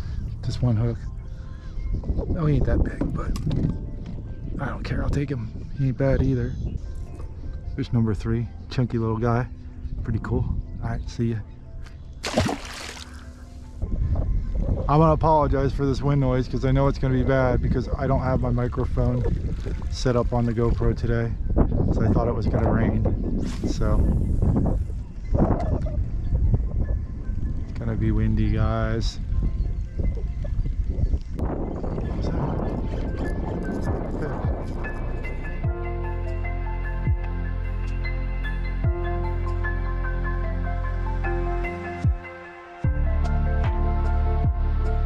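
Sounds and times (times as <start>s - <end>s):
wind buffeting microphone: 0.0s - 11.5s, 13.6s - 35.8s
faint background music: 0.0s - 45.0s.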